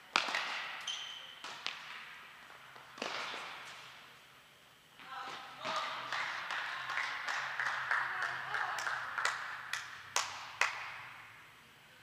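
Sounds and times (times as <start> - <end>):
people clapping in a hall: 5.7 - 11.2.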